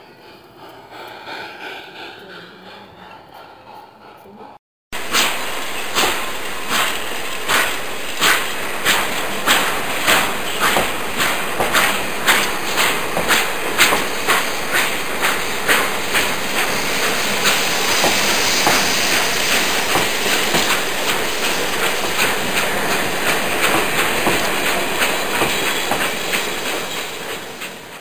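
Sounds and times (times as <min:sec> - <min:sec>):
steady train hiss: 0:00.0 - 0:28.0
train wheels clicking over rail joints: 0:00.0 - 0:28.0.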